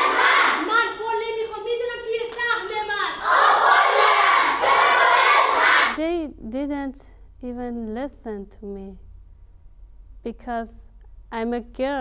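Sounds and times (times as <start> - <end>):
girls shouting together: 0.0 - 0.9, 2.8 - 6.0.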